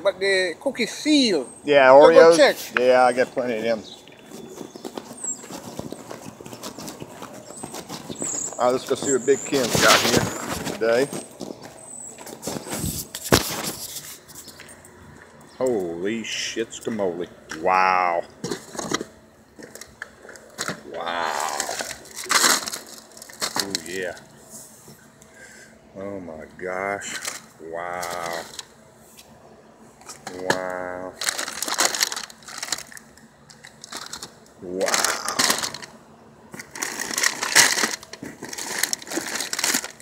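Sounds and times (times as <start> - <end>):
footsteps on pavement: 3.5 - 15.4
plastic packaging crinkling: 3.6 - 14.6, 21.4 - 24.2, 27.0 - 28.7, 30.1 - 35.9, 36.6 - 40.0.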